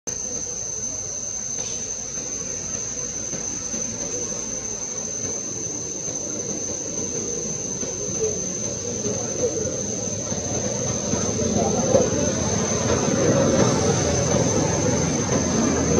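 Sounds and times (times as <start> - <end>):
high-pitched insect drone: 0.1 - 15.9.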